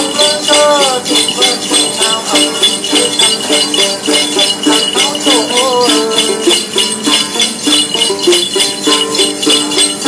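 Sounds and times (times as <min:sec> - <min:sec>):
plucked lute melody: 0:00.0 - 0:10.0
small bells shaken: 0:00.0 - 0:10.0.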